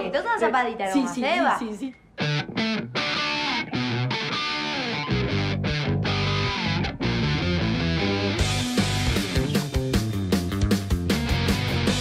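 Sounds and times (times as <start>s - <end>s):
loud rock music: 2.2s - 12.0s.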